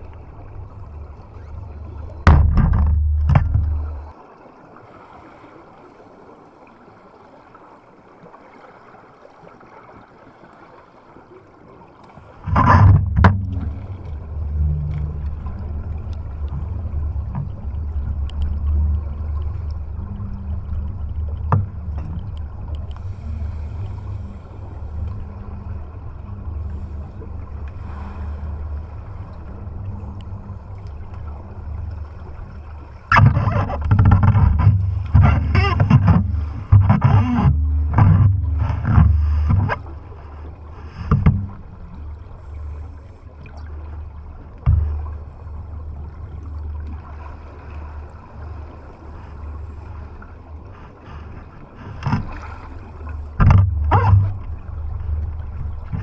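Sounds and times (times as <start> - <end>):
water rushing over camera housing: 0.0 - 4.2, 12.0 - 43.0, 43.6 - 56.0
bubbling and splashing: 9.6 - 56.0.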